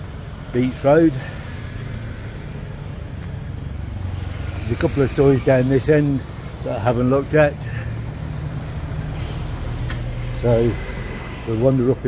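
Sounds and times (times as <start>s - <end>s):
vehicle engines rumbling: 0.0s - 12.0s.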